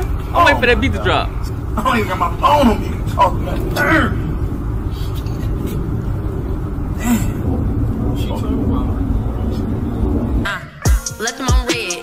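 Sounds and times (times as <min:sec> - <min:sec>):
steady low rumble: 0:00.0 - 0:11.9.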